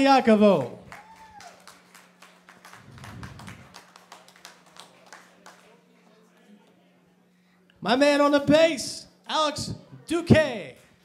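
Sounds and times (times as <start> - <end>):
audience applause: 0.9 - 5.9.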